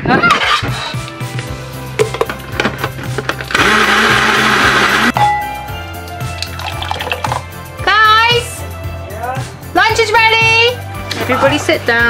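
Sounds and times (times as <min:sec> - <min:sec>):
background music: 0:00.0 - 0:12.0
electric blender running: 0:03.5 - 0:05.1.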